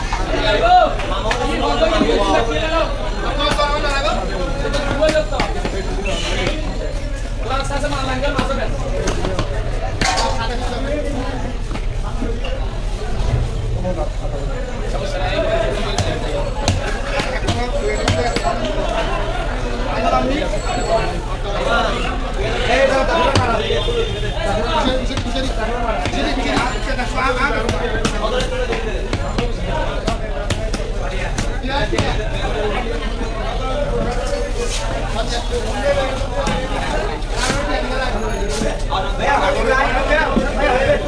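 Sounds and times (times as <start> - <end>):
market chatter: 0.0 - 41.0.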